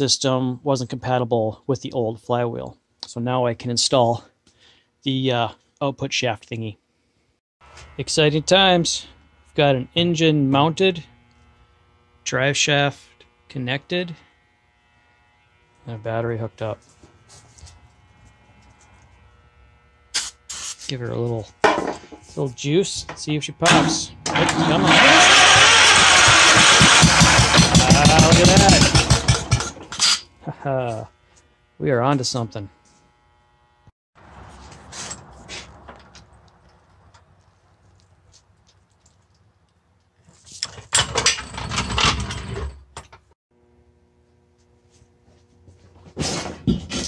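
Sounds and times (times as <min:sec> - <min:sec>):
aerosol can spraying: 0:20.2 - 0:20.9
floor jack clattering: 0:23.7 - 0:29.9.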